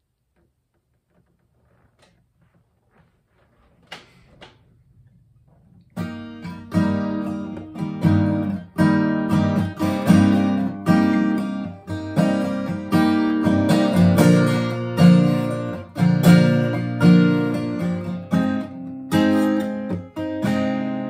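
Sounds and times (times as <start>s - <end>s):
acoustic guitar strumming chords: 6.0s - 21.0s.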